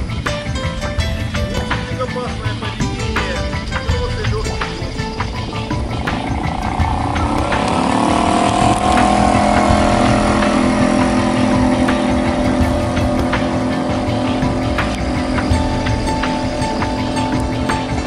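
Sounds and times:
outboard motor running: 0:02.4 - 0:18.0.

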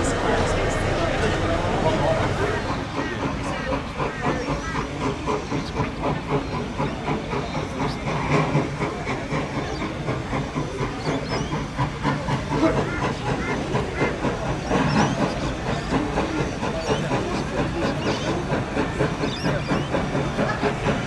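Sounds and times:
hissing steam: 0:00.0 - 0:21.0
steam locomotive exhaust beats: 0:00.0 - 0:21.0.

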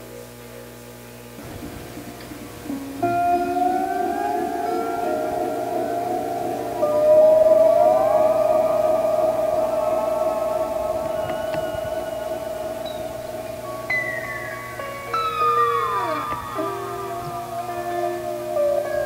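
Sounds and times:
gliding synthesizer tones: 0:01.4 - 0:19.0
pulsing synthesizer layer: 0:02.7 - 0:19.0.

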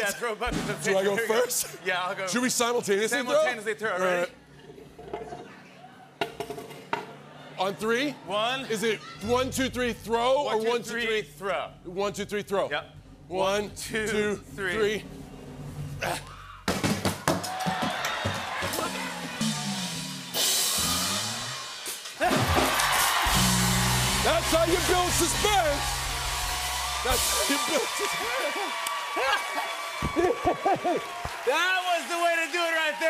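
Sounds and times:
studio audience cheering: 0:17.2 - 0:33.0
live band music with drums: 0:17.8 - 0:27.9.

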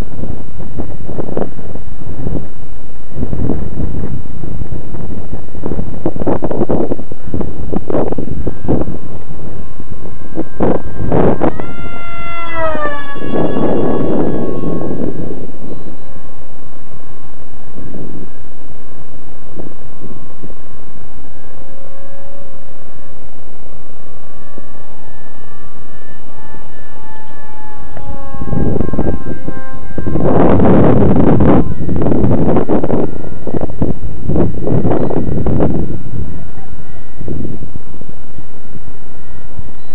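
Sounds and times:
wind buffeting microphone: 0:00.0 - 0:39.9
model jet propeller whining: 0:05.3 - 0:39.9.

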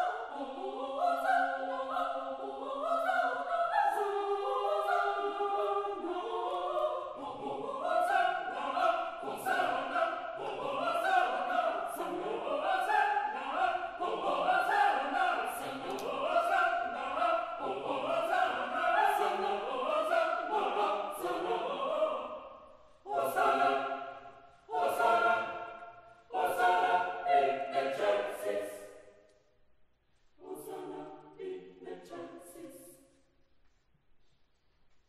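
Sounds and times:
mixed choir singing: 0:00.0 - 0:29.2, 0:30.4 - 0:33.2.

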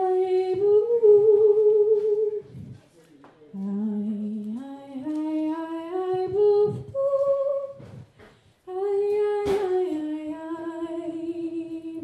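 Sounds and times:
woman singing lullaby: 0:08.7 - 0:12.0.

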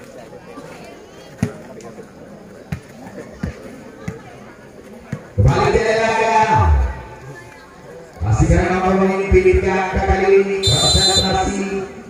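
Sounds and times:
faint crowd voices: 0:00.0 - 0:12.0.

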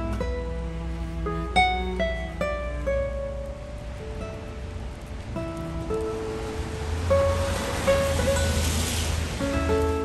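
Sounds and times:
music of plucked notes: 0:00.0 - 0:10.0
rushing noise: 0:00.0 - 0:10.0.

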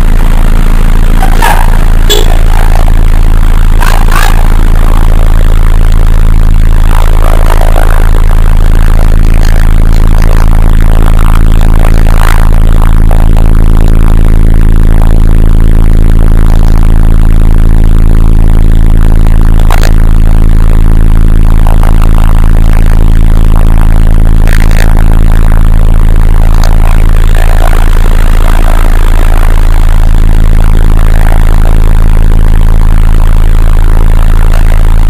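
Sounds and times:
heavy machinery droning: 0:00.0 - 0:35.0.

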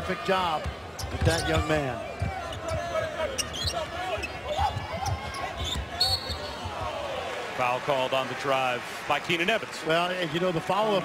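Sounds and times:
arena crowd murmur: 0:00.0 - 0:11.0
sneaker squeaks: 0:01.0 - 0:06.7.

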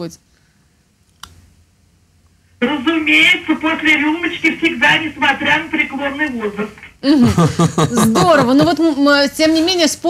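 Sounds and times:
person speaking: 0:02.6 - 0:09.6.

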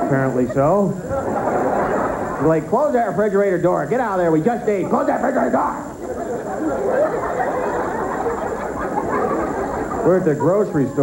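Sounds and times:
audience laughing: 0:00.0 - 0:02.9, 0:05.8 - 0:11.0.

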